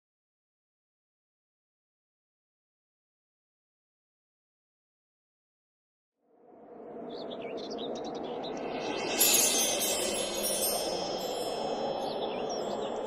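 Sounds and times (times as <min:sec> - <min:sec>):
steady rushing background: 0:07.0 - 0:13.0
bird chirps: 0:07.1 - 0:13.0
wind chimes ringing: 0:08.7 - 0:13.0.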